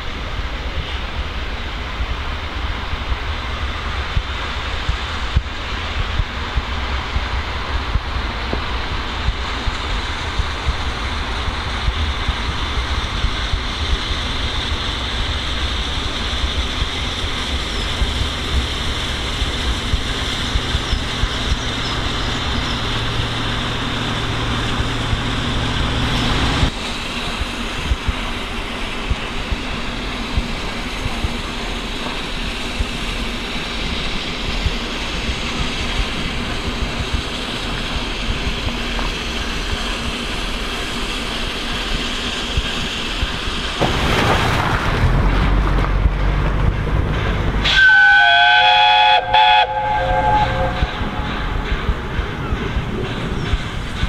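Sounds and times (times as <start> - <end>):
steam hissing: 0.0 - 43.8, 47.2 - 54.0.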